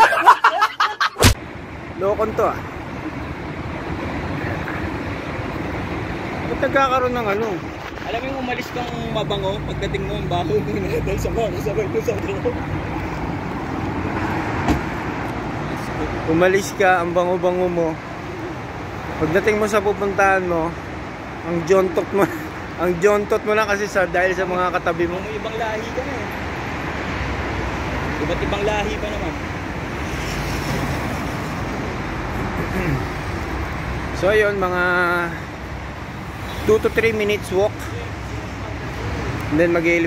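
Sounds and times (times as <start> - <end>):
road traffic passing cars: 0.0 - 40.0.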